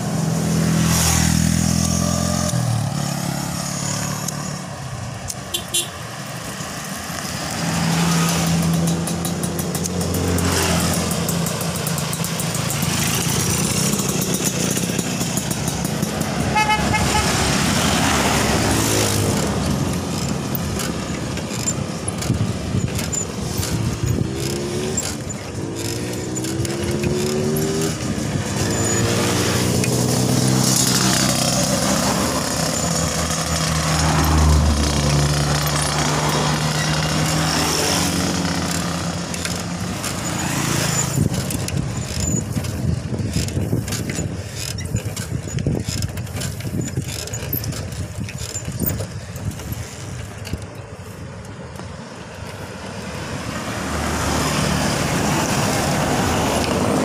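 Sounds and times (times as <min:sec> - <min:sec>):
cars passing: 0:00.0 - 0:57.0
motorcycles passing: 0:00.0 - 0:57.0.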